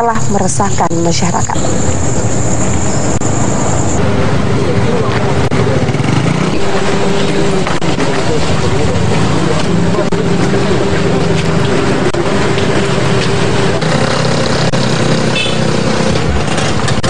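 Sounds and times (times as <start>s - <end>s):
thin high whine: 0.0s - 4.3s
engine humming steadily: 0.0s - 17.0s
indistinct voices: 0.0s - 17.0s.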